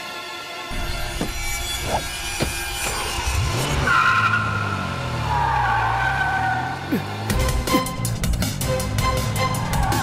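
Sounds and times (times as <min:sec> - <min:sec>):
car engine revving: 0:01.3 - 0:10.0.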